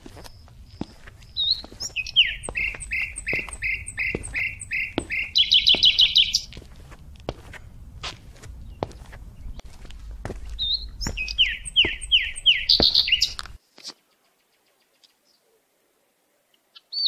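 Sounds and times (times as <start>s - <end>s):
songbird singing: 0.0s - 15.6s.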